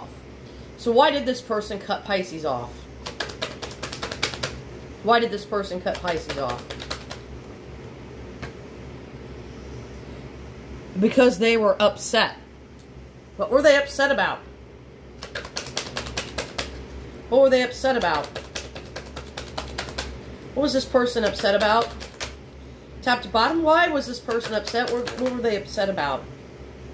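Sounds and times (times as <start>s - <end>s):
fan hum: 0.0s - 26.9s
rapid clicking: 3.0s - 4.6s, 5.8s - 7.3s, 15.2s - 16.8s, 17.8s - 20.2s, 21.0s - 22.4s, 24.1s - 25.4s.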